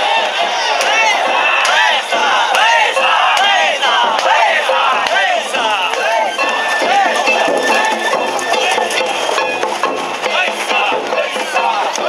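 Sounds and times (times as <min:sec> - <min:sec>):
crowd shouting rhythmic call: 0:00.0 - 0:12.0.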